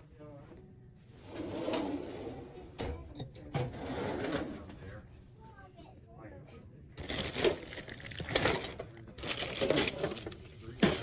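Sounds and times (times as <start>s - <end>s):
metal drawers sliding: 1.2s - 4.8s.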